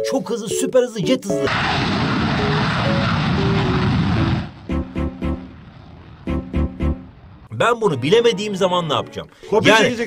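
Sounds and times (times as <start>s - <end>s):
jet engine roaring: 1.5s - 7.4s.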